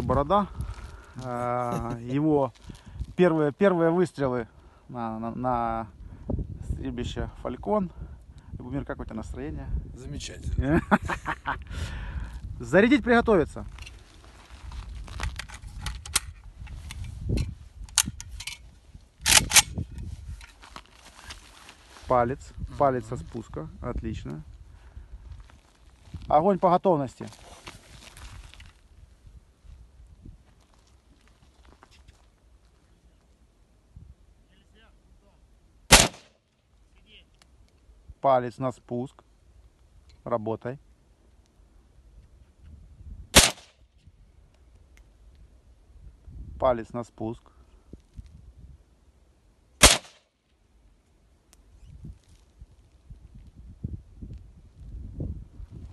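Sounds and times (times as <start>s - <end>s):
rifle metallic clicks and rattles: 15.2s - 18.6s, 19.2s - 19.8s
gunshot with ringing tail: 35.9s - 36.3s, 43.4s - 43.7s, 49.8s - 50.2s.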